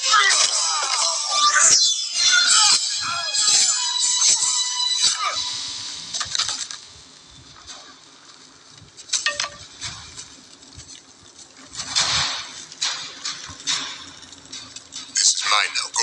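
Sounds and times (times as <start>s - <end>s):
short crackles and clinks: 8.7s - 15.4s.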